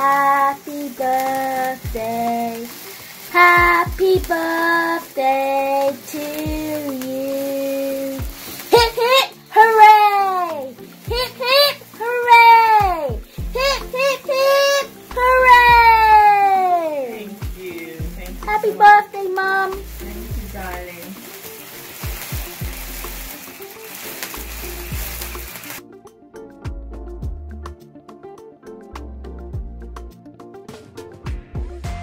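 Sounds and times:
high voices: 0:00.0 - 0:25.8
sparkler candle fizzing and crackling: 0:00.0 - 0:25.9
music with deep bass beat: 0:03.6 - 0:04.3, 0:06.4 - 0:06.8, 0:08.2 - 0:09.0, 0:12.8 - 0:14.0, 0:15.0 - 0:16.4, 0:17.4 - 0:18.6, 0:19.7 - 0:21.0, 0:22.0 - 0:23.4, 0:24.2 - 0:32.0
person calling out: 0:08.7 - 0:21.0
long falling cry: 0:09.0 - 0:17.2.

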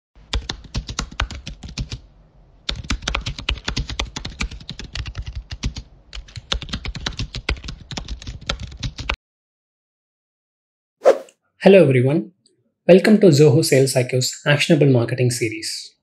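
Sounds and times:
keyboard typing: 0:00.3 - 0:02.0, 0:02.7 - 0:09.2.

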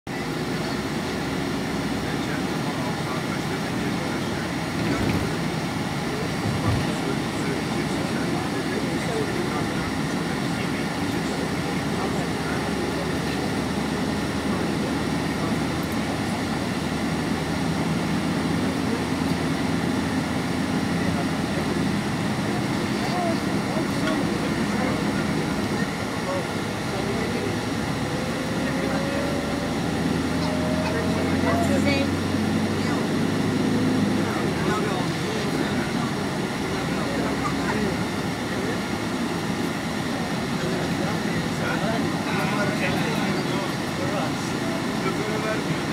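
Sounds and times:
vehicle engine drone: 0:00.1 - 0:45.9.

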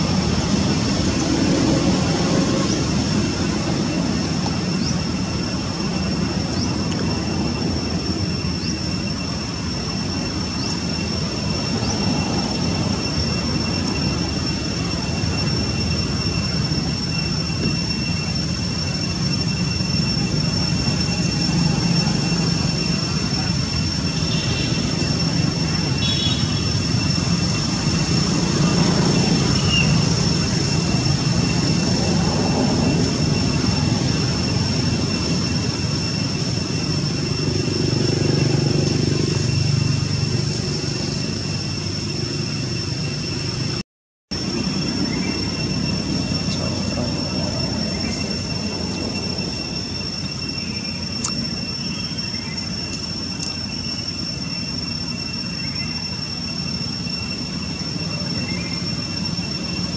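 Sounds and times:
high-pitched whine: 0:00.0 - 0:59.9
outdoor background drone: 0:00.0 - 0:59.9.

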